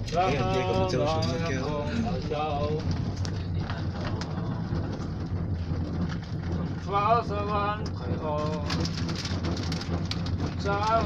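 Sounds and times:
cable car cabin rumbling: 0.0 - 11.0.

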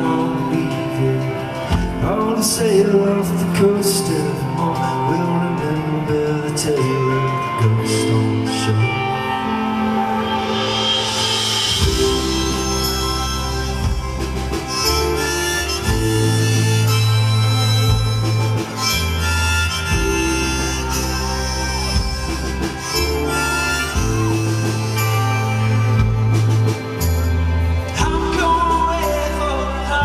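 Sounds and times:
live rock band playing: 0.0 - 30.0
harmonica solo: 6.8 - 29.9.

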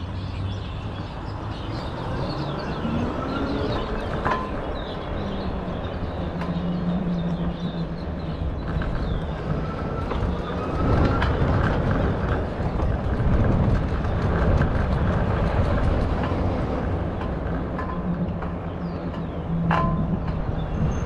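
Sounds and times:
wind rushing over microphone: 0.0 - 21.0
bicycle rattling: 7.8 - 21.0.

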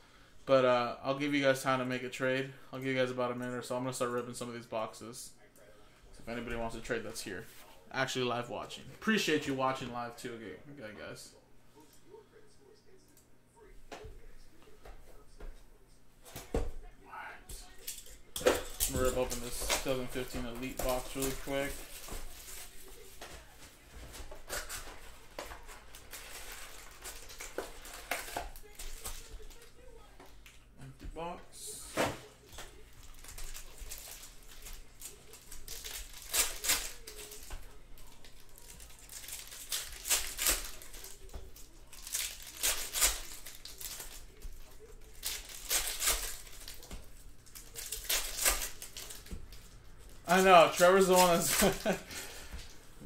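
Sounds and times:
plastic and foil packs tearing: 17.6 - 23.2, 24.1 - 29.7, 32.7 - 52.8.

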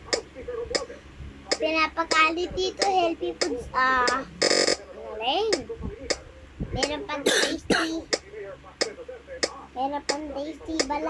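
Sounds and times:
child coughing: 7.2 - 8.1.

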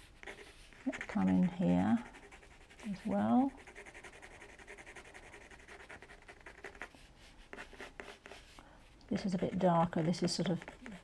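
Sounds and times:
pencil scratching on paper: 0.0 - 8.6, 9.2 - 11.0.

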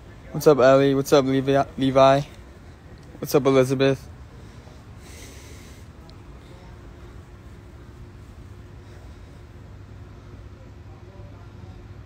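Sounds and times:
low background rumble: 0.0 - 12.0
breath through the nose: 4.4 - 6.0.

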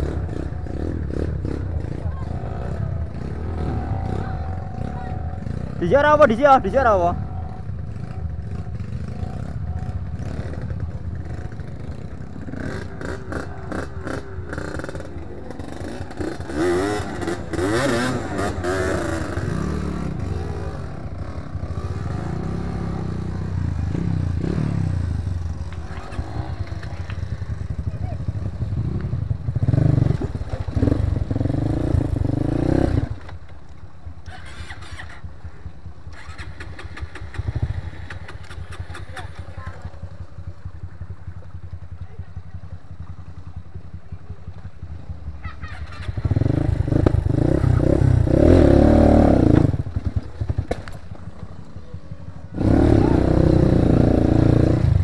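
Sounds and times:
dirt bike engine revving: 0.0 - 33.4, 34.2 - 41.6, 45.0 - 55.0.

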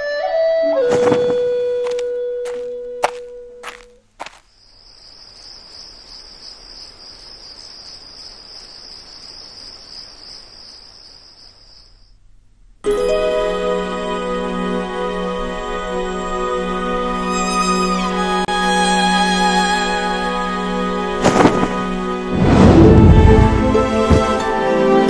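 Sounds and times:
crickets chirring: 1.8 - 12.4
held musical note: 12.9 - 25.0.

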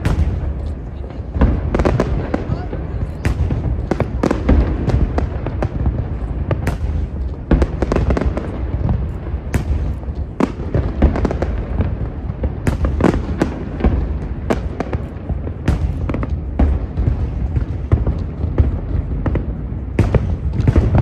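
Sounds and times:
fireworks bangs: 0.0 - 21.0.

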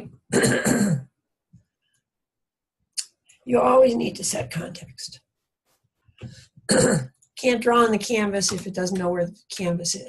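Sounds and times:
woman clearing her throat: 0.3 - 1.1, 6.7 - 7.1.

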